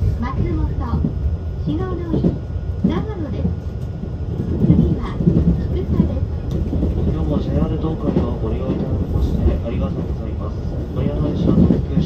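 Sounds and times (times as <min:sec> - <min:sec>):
passenger chatter: 0:00.0 - 0:12.0
train running rumble: 0:00.0 - 0:12.0.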